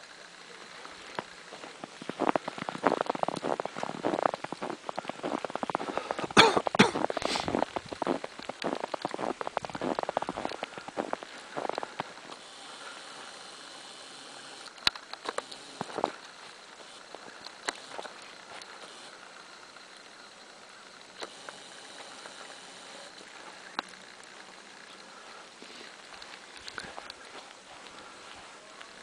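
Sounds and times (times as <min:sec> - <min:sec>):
footsteps crunching in snow: 0:00.7 - 0:12.4, 0:15.6 - 0:19.0, 0:24.3 - 0:29.0.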